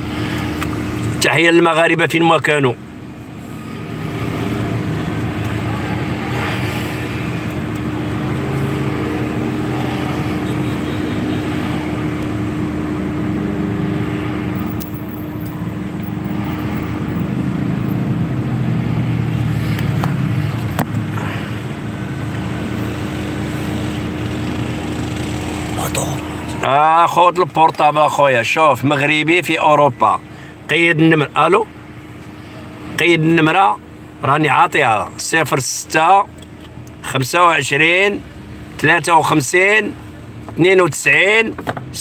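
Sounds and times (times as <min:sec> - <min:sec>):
car engine hum inside cabin: 0:00.0 - 0:28.3.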